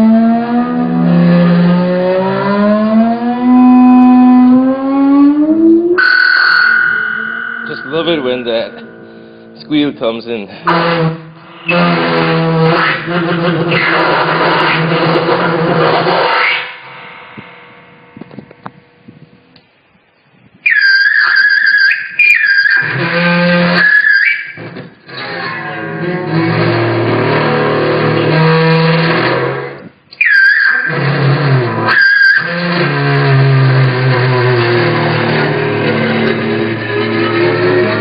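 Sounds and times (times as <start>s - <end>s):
high feedback squeal: 0.0s - 19.5s, 20.1s - 38.0s
electric guitar feedback drone: 0.0s - 19.6s, 20.6s - 38.0s.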